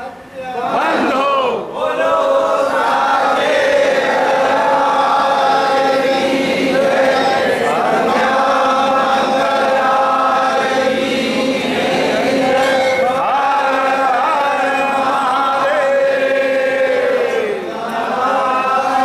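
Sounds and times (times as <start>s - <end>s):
crowd singing a chant: 0.6s - 19.0s.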